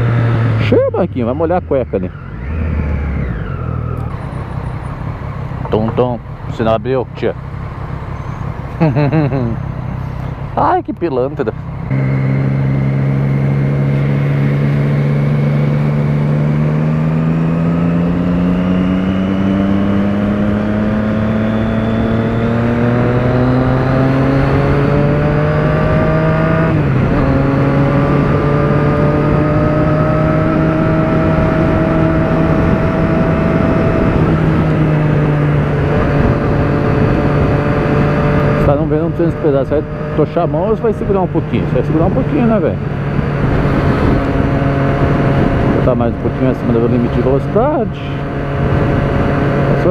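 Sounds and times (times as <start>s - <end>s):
motorcycle engine accelerating: 0.0s - 49.9s
wind noise: 12.4s - 38.9s, 39.7s - 49.9s.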